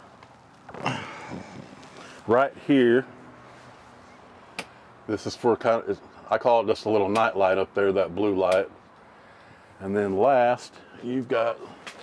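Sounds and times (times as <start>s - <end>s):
man sighing breath: 0.8s - 2.2s.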